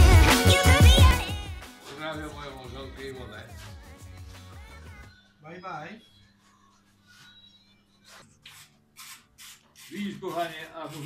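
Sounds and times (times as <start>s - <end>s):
man's voice: 1.9s - 4.0s.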